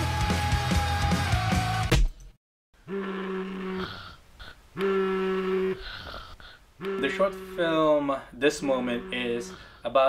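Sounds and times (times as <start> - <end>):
alarm clock buzzing: 8.6 - 9.5.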